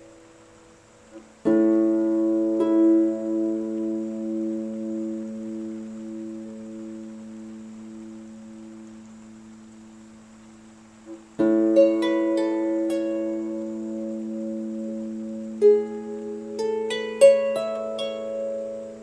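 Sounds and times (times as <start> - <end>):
harp chords and notes: 0.0 - 9.0, 11.1 - 19.0.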